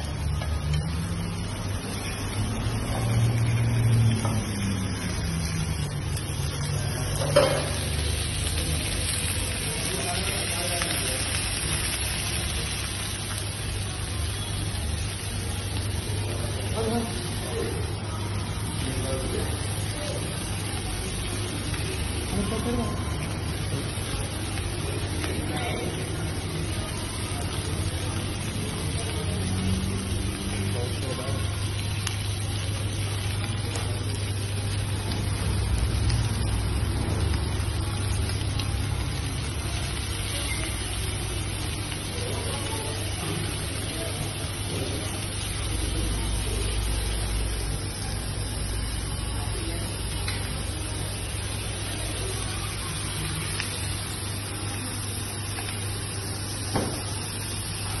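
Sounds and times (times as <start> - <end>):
fish sizzling on hot plate: 0.0 - 58.0.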